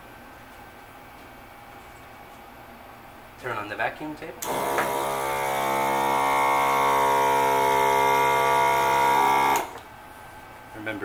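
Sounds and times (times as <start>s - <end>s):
suction motor humming: 4.4s - 9.8s.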